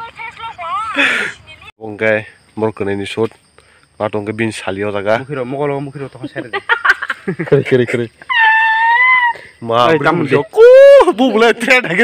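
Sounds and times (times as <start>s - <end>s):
person squealing: 8.2s - 11.1s
person yelling: 8.3s - 11.2s.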